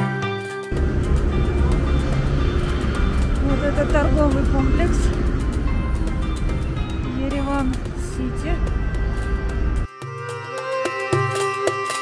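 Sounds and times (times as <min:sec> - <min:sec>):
background music: 0:00.0 - 0:12.0
passing traffic rumble: 0:00.7 - 0:09.9.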